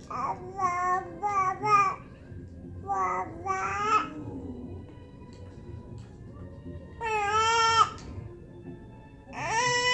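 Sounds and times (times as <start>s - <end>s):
infant babbling: 0.0s - 2.0s, 2.8s - 4.8s, 7.0s - 8.0s, 9.3s - 9.9s.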